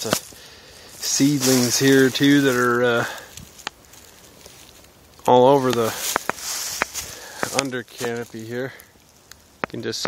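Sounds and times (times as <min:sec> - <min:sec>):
footsteps in dry leaves: 0:00.0 - 0:09.0.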